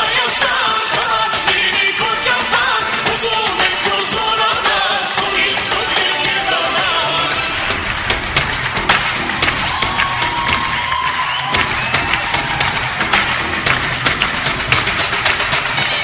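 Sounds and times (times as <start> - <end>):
music playing: 0.0 - 16.0
crowd cheering: 6.6 - 16.0.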